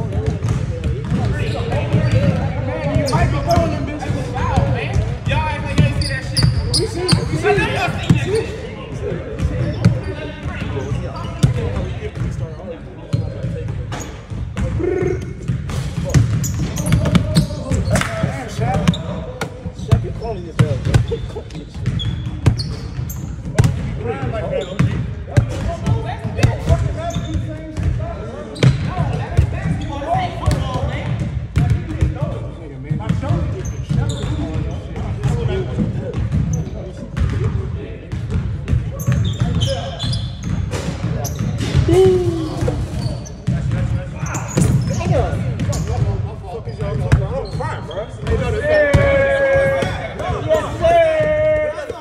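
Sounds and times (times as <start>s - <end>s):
basketballs bouncing on hardwood: 0.0s - 7.4s, 13.1s - 24.0s, 33.1s - 36.6s, 37.2s - 39.8s.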